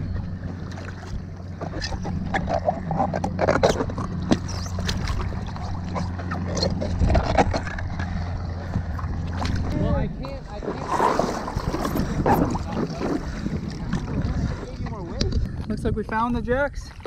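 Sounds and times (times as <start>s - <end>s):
feet and fins splashing water: 0.0s - 15.5s
steady low hum: 0.0s - 16.2s.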